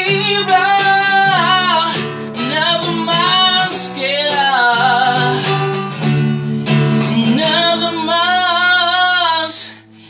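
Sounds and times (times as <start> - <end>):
man singing with vibrato: 0.0 - 5.9, 6.6 - 9.7
nylon-string guitar chord: 0.0 - 9.3.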